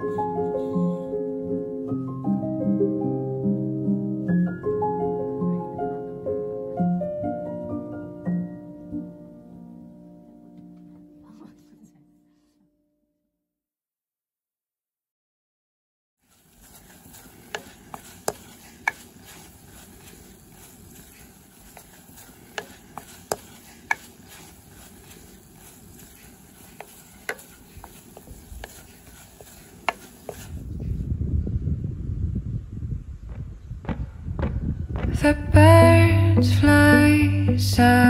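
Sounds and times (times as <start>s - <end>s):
spatula clicking on stone: 16.7s - 30.5s.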